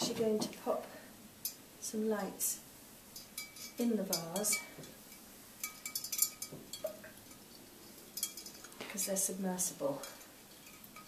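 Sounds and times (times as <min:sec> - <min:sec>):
fairy lights clinking against glass: 0:03.2 - 0:11.0.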